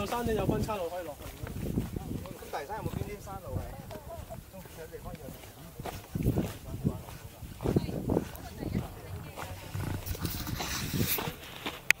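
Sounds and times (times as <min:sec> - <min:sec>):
people talking indistinctly: 0:00.0 - 0:11.7.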